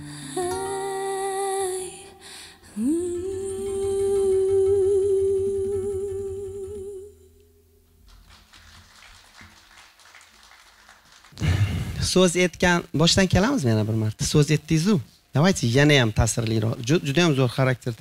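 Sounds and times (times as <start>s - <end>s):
woman singing wordlessly: 0.0s - 7.4s
acoustic guitar: 0.0s - 8.5s, 11.4s - 12.4s.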